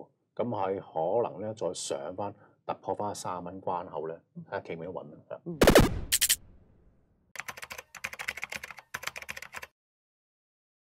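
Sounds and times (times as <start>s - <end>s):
keyboard typing clicks: 7.4s - 9.7s.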